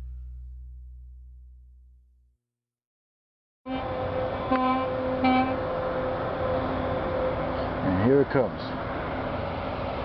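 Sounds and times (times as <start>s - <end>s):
steady engine drone: 3.7s - 10.0s.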